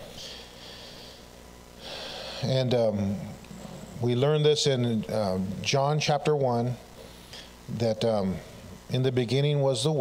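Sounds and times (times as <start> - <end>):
man breathing into microphone: 0.1 - 2.5
man speaking: 2.4 - 6.8, 7.7 - 10.0.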